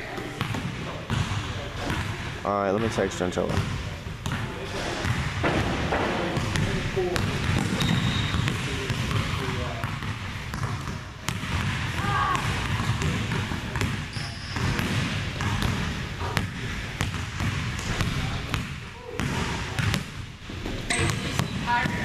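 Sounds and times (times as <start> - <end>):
sneakers squeaking on court: 3.5 - 22.0
basketball dribbling on hardwood: 5.0 - 14.0, 14.6 - 20.1.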